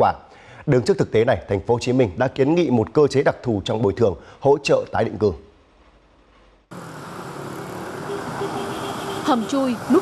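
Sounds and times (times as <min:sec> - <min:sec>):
cars driving past: 0:06.7 - 0:10.0.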